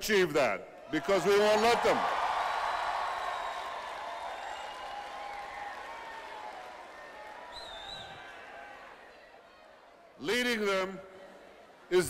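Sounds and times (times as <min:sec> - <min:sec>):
audience applauding: 0:01.6 - 0:09.1.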